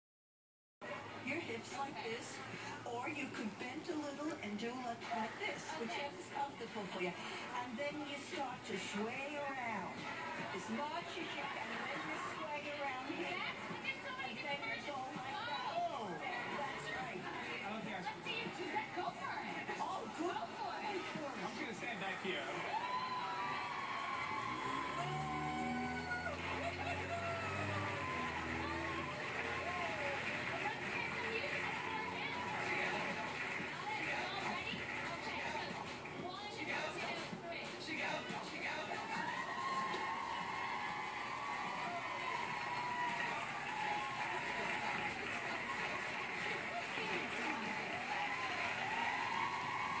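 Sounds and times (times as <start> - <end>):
music: 0.8 - 50.0
television voices: 0.8 - 50.0
audience cheering: 22.2 - 35.2, 39.0 - 50.0.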